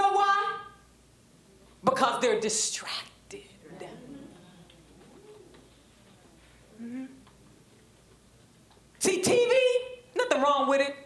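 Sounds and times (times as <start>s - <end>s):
person humming mm-hmm: 6.7s - 7.3s.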